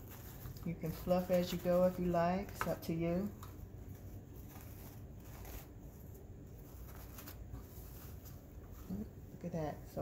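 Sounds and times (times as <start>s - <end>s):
ribbon rustling: 0.0s - 9.2s
low room hum: 0.0s - 10.0s.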